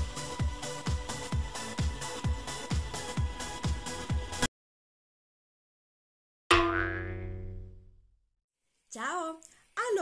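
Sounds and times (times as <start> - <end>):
struck ringing note: 6.5 - 7.9.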